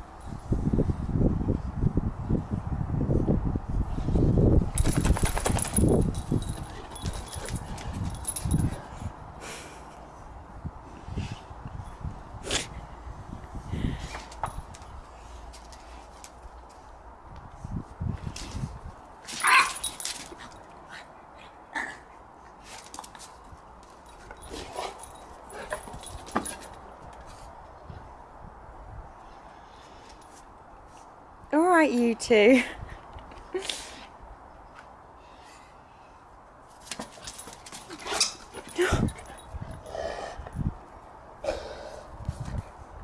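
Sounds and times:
puppy yelping: 19.4s - 19.8s.

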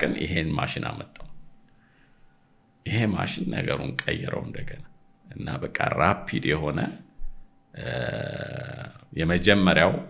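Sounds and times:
man's drawn-out vocal sound: 7.8s - 9.0s.

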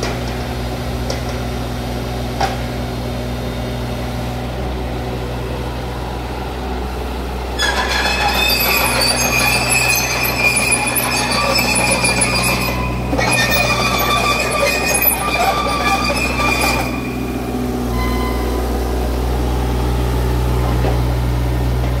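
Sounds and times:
diesel engine running: 0.0s - 22.0s
steel tracks squealing and clattering: 7.5s - 20.0s.

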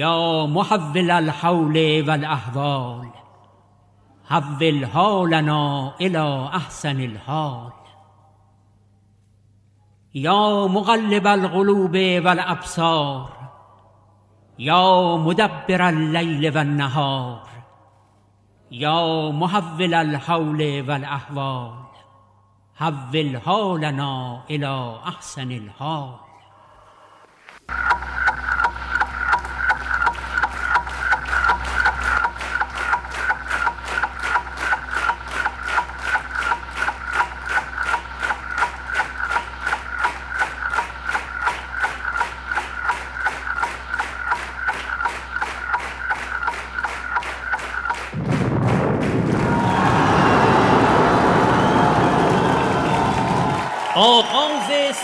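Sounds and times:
fast clock-like ticking: 27.7s - 49.0s
steady low drone: 27.7s - 53.6s
crowd cheering and applauding: 27.7s - 55.0s.

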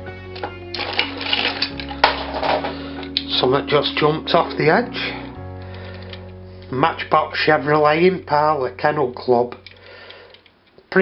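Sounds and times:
background music: 0.0s - 10.4s.

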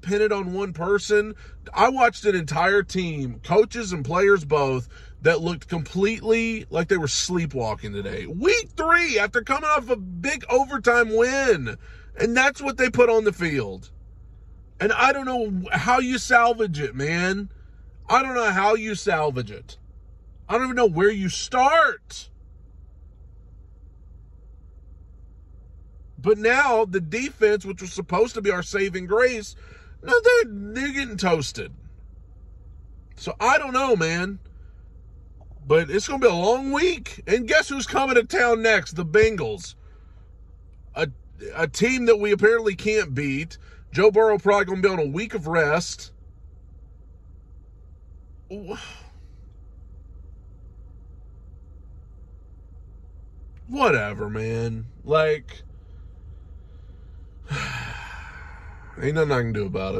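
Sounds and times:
car cabin low hum: 0.0s - 59.9s.

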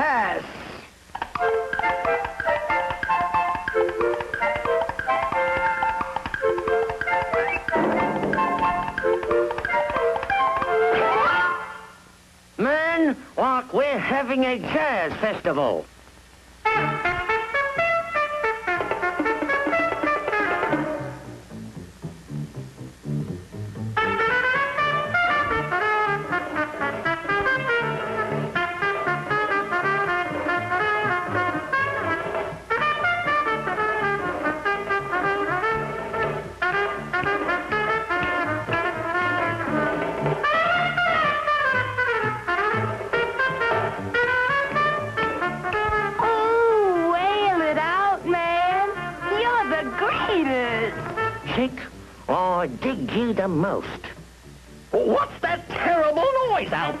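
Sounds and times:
trumpet: 16.6s - 21.2s, 24.0s - 46.2s, 48.9s - 51.6s
up-tempo jazz band: 16.6s - 57.0s
bass line: 20.8s - 48.4s.

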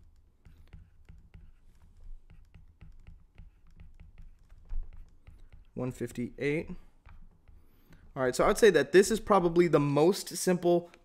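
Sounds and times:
stylus tapping on glass screen: 2.2s - 5.8s.

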